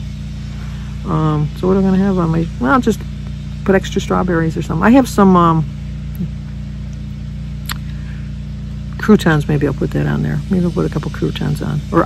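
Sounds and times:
low mechanical motor hum: 0:00.0 - 0:12.0.

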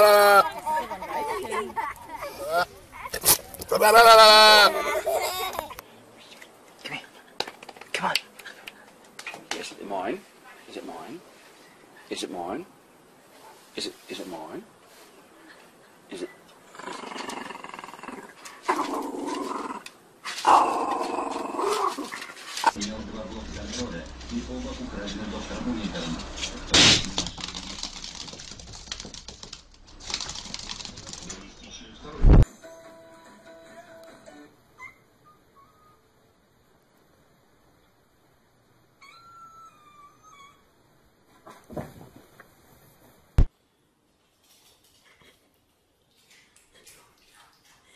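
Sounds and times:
small dog growling: 0:16.7 - 0:22.8
thumps and rustles: 0:41.3 - 0:42.4.

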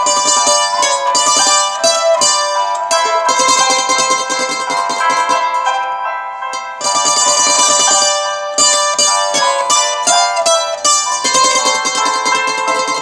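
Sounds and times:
plucked string instrument: 0:00.0 - 0:13.0.

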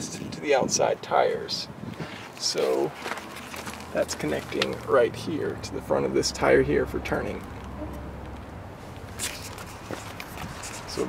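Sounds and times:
footsteps on gravel: 0:02.2 - 0:04.9, 0:08.8 - 0:11.0.

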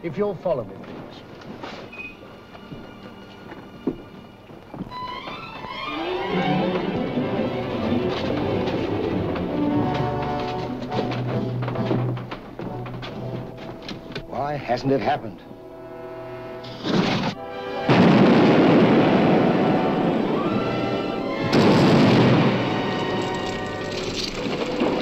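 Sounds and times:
orchestral film music: 0:01.3 - 0:25.0.

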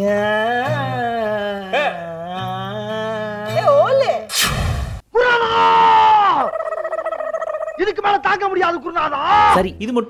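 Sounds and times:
man laughing: 0:06.4 - 0:08.1.

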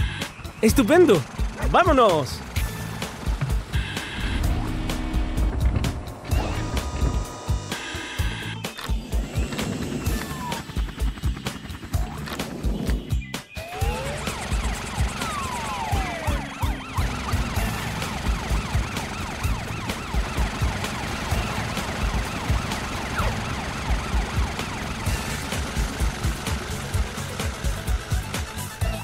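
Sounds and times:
upbeat music with thumping beat: 0:02.6 - 0:04.5
cartoon police siren wailing: 0:03.8 - 0:08.6, 0:10.0 - 0:10.8, 0:13.6 - 0:26.8.

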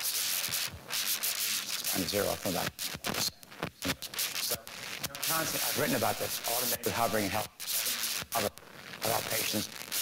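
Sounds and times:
clothing rubbing on microphone: 0:00.0 - 0:10.0
man speaking: 0:04.5 - 0:09.7.

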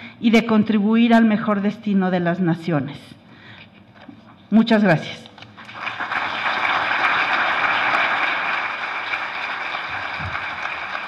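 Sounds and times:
audience applauding: 0:05.6 - 0:11.0.

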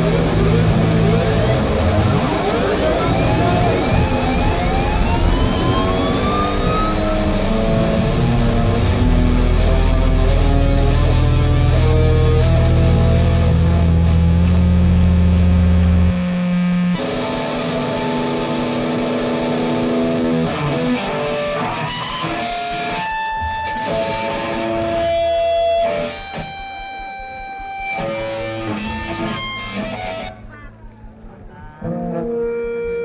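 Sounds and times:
electric guitar feedback: 0:00.0 - 0:33.0.

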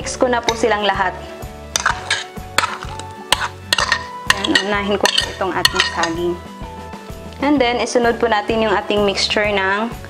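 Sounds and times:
background music: 0:00.0 - 0:10.0
utensil clinking against dishes: 0:01.8 - 0:06.3.

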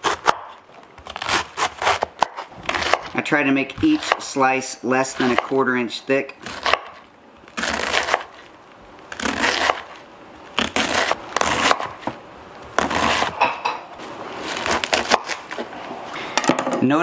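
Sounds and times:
knife slicing cabbage on board: 0:00.0 - 0:04.3, 0:05.0 - 0:05.5, 0:06.4 - 0:08.4, 0:09.1 - 0:10.0, 0:10.6 - 0:13.5, 0:14.4 - 0:15.7.

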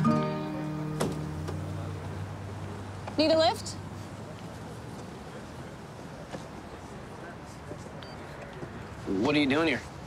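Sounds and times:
background music held notes: 0:00.0 - 0:01.9.

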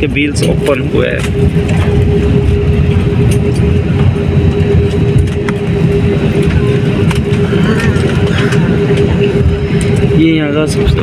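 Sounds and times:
airliner engines and wheels rumbling: 0:00.0 - 0:11.0
cabin hum: 0:00.0 - 0:11.0.

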